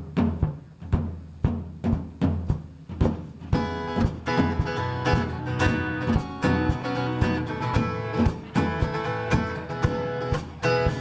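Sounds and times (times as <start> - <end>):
drum beating steady rhythm: 0.0 - 11.0.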